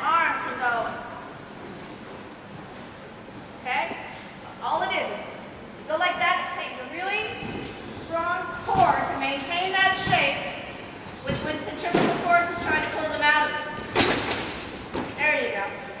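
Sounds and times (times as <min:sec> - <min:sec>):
people talking: 0:00.0 - 0:01.1, 0:03.6 - 0:04.0, 0:04.6 - 0:10.6, 0:11.2 - 0:13.7, 0:15.2 - 0:16.0.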